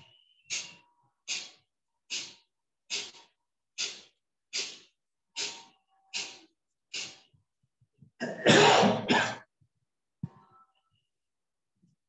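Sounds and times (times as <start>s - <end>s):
man clearing his throat: 8.2s - 9.5s.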